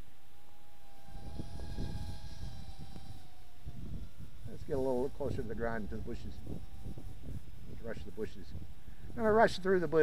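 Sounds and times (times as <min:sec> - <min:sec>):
drone propellers whining: 0:00.0 - 0:10.0
wind rumble on microphone: 0:00.0 - 0:10.0.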